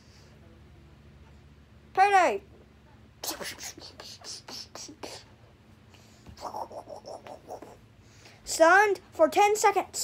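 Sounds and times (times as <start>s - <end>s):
breathy hissing mouth sounds: 3.2s - 5.3s.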